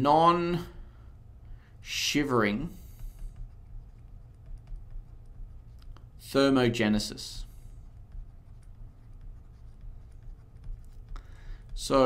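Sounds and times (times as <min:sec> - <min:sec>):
low room hum: 0:00.0 - 0:12.0
handwriting scratching: 0:02.8 - 0:06.1, 0:07.4 - 0:12.0.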